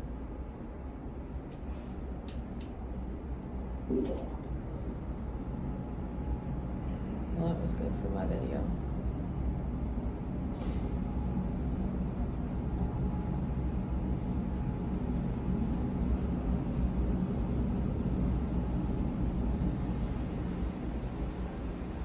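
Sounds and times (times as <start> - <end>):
faint hum: 0.0 - 22.0.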